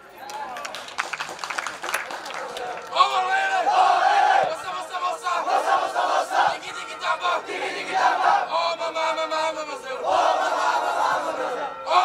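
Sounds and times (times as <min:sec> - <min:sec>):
team shouting a chant: 0:02.9 - 0:12.0.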